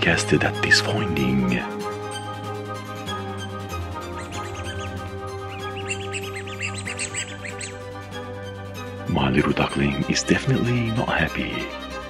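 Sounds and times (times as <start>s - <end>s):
background music: 0.0s - 12.0s
high duckling-like chirps and squeaks: 4.2s - 7.9s.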